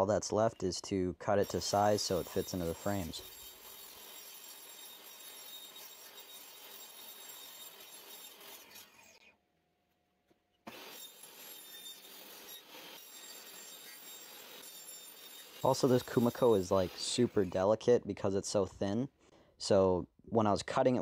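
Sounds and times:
table saw cutting wood: 1.4 - 9.3, 10.7 - 17.6.

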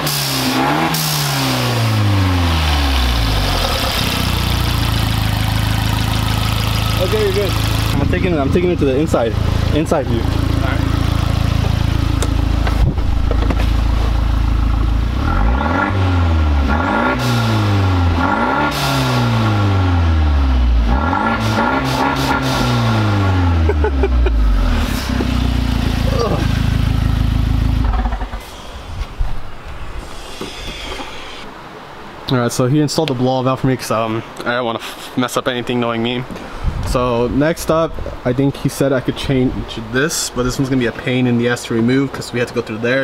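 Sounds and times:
car engine revving: 0.0 - 28.8
blow-off valve hiss: 30.0 - 31.5.

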